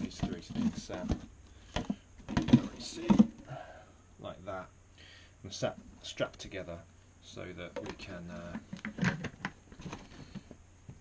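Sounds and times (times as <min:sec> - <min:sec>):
plastic jars knocking on bench: 0:00.1 - 0:03.4.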